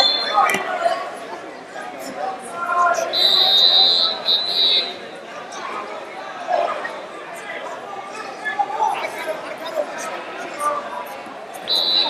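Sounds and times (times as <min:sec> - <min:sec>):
echoing crowd chatter: 0:00.0 - 0:12.0.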